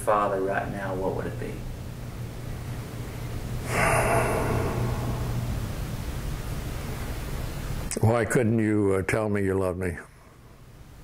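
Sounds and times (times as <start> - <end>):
low room hum: 0.0 - 11.0
man drawing sharp breath: 3.6 - 5.4.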